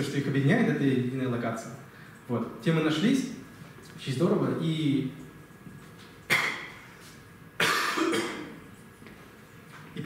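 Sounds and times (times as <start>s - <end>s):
man coughing into microphone: 7.6s - 8.6s.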